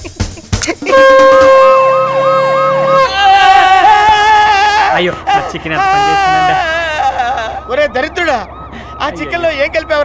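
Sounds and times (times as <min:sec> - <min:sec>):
ambulance siren yelping: 0:00.9 - 0:10.0.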